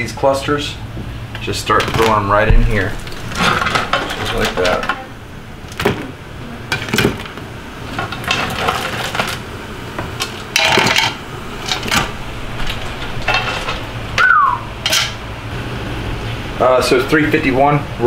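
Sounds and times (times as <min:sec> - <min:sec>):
steady low hum: 0:00.0 - 0:18.0
crab shells clattering on pot: 0:08.0 - 0:09.4, 0:10.2 - 0:13.9.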